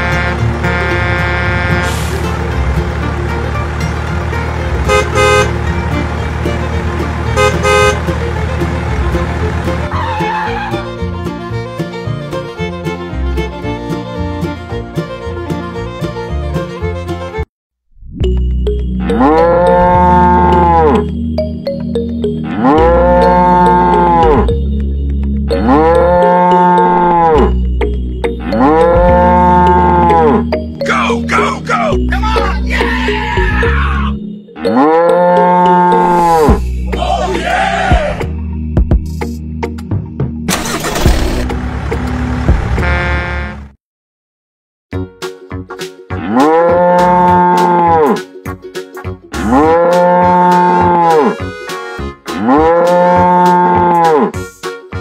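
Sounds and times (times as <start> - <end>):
background music: 0.0 - 17.5, 18.2 - 43.2, 45.0 - 55.0
cow mooing: 19.0 - 21.1, 22.4 - 24.5, 25.5 - 27.5, 28.4 - 30.4, 34.6 - 36.6, 46.2 - 48.2, 49.4 - 51.4, 52.3 - 54.4.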